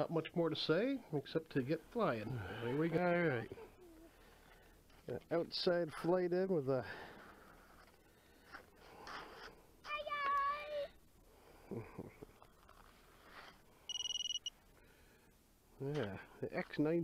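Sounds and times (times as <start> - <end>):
high pulsing beep: 13.9 - 14.5
low electronic beep: 13.9 - 14.5.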